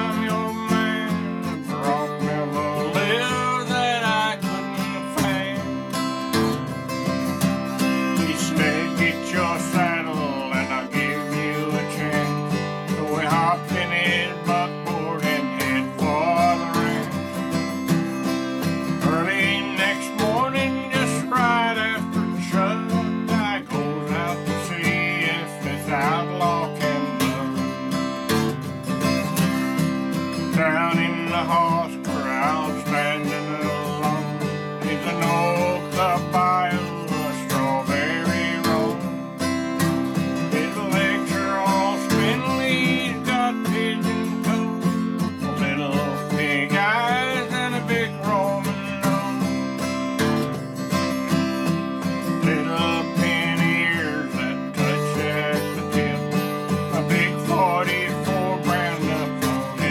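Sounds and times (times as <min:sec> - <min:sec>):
acoustic guitar strumming: 0:00.0 - 0:59.9.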